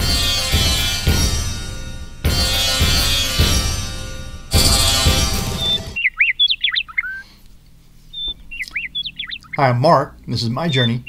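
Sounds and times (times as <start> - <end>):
intro music: 0.0 - 6.0
small bird chirping: 5.6 - 7.4, 8.0 - 9.7.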